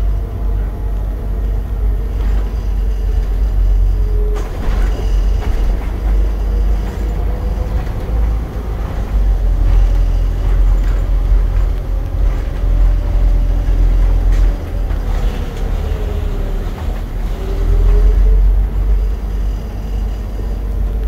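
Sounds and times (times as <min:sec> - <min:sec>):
bus engine and road rumble: 0:00.0 - 0:21.0
faint engine whine: 0:00.0 - 0:21.0.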